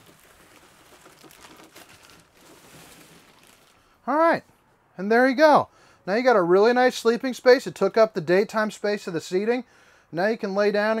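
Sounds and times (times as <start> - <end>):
soft rustling: 0.0 - 4.6.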